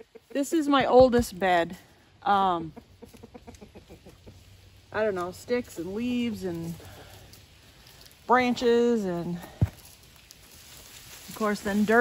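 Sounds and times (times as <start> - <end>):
hens clucking: 2.3 - 5.3.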